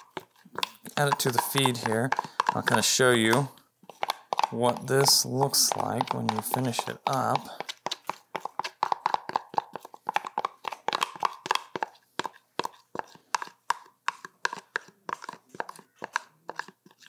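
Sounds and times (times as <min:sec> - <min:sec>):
utensil scraping a bowl: 0:00.0 - 0:17.0.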